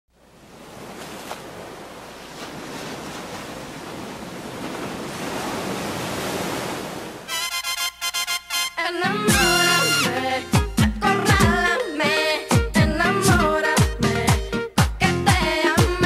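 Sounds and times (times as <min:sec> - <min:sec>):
ocean surf: 0:00.1 - 0:12.4.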